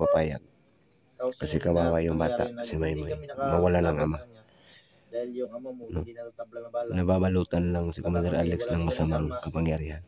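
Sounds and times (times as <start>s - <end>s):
crickets trilling: 0.0s - 10.0s
man's voice: 1.2s - 4.4s, 5.2s - 10.0s.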